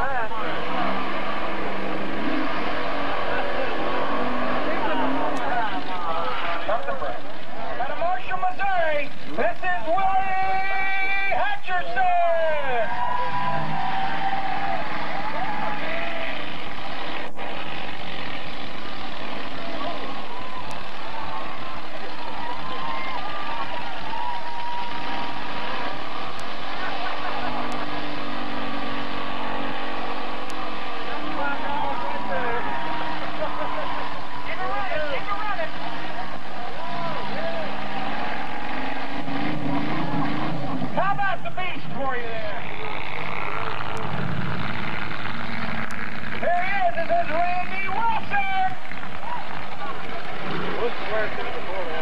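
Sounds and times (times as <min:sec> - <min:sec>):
buggy engine revving: 0:00.0 - 0:52.0.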